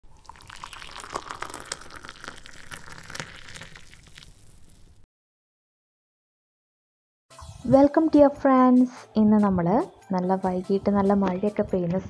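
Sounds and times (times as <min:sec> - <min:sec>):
tea pouring into a glass: 0:00.1 - 0:04.7.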